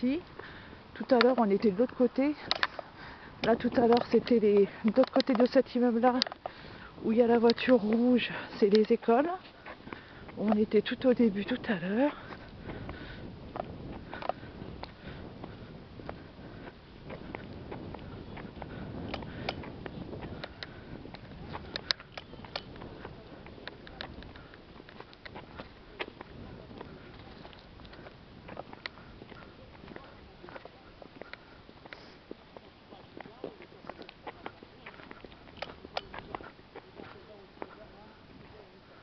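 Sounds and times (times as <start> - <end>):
footsteps: 0.0 - 39.0
faint voices: 1.0 - 39.0
camera handling clicks and taps: 2.4 - 2.8.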